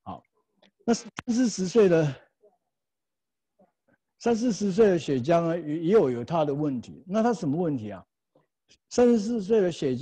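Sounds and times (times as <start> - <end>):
man speaking: 0.0 - 2.4, 4.2 - 8.1, 8.8 - 10.0.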